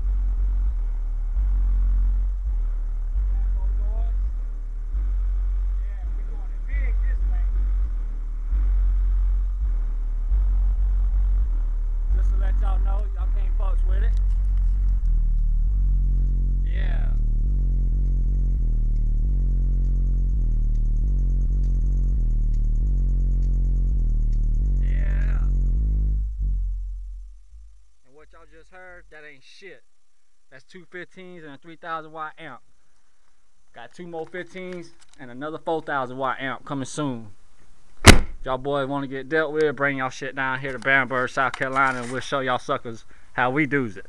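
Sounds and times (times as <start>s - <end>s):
bass-heavy music from subwoofers: 0.0s - 27.8s.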